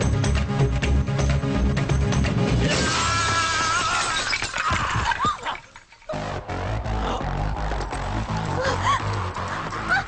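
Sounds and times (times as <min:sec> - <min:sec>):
film music: 0:00.0 - 0:03.4, 0:05.9 - 0:10.0
glass shattering: 0:02.7 - 0:06.3.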